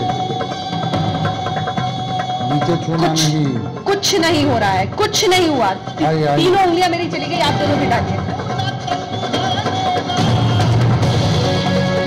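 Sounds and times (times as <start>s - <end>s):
music bed over loudspeakers: 7.4s - 12.0s.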